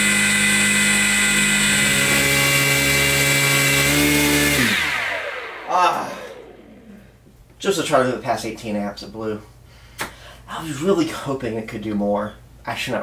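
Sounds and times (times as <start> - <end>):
electric motor whining: 0.0 - 7.2.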